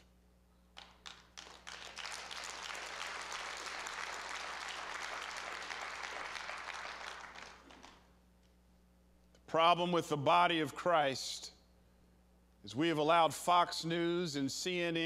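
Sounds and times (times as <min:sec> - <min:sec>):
congregation applauding: 0:00.8 - 0:08.1.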